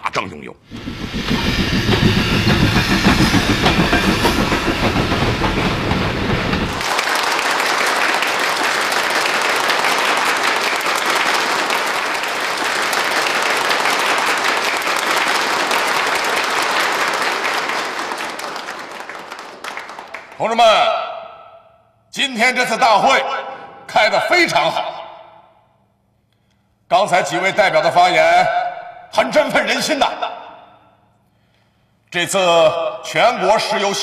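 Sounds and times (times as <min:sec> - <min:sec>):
steam train clattering: 0:00.6 - 0:08.2
audience applauding: 0:00.7 - 0:20.6.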